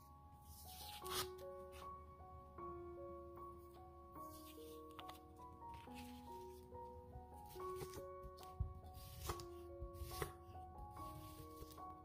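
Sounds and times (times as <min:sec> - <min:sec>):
soft background music: 0:00.0 - 0:12.0
knife slicing onion on board: 0:09.0 - 0:09.4.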